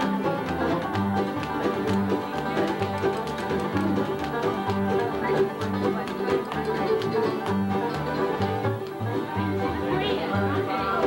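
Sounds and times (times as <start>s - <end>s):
picked banjo notes: 0.0s - 11.0s
upright bass notes: 0.0s - 11.0s.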